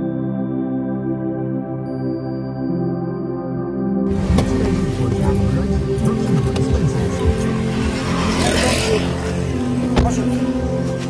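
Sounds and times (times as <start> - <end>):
vehicle passing by: 4.1 - 11.0.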